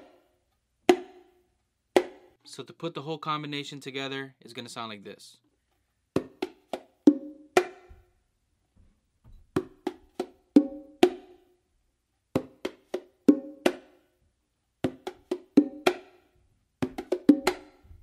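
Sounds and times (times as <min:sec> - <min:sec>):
bongos played with hands: 0:00.9 - 0:01.3, 0:02.0 - 0:02.3, 0:06.2 - 0:07.9, 0:09.6 - 0:11.4, 0:12.4 - 0:14.0, 0:14.8 - 0:17.8.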